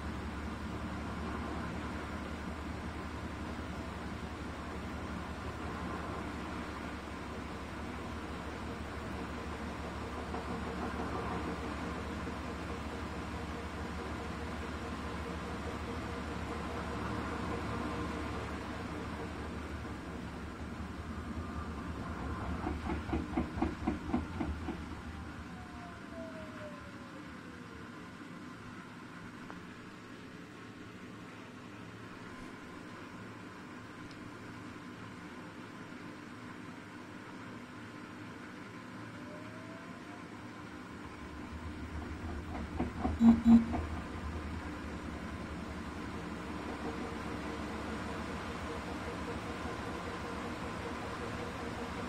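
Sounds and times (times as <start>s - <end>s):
short electronic beeps: 43.2s - 43.9s.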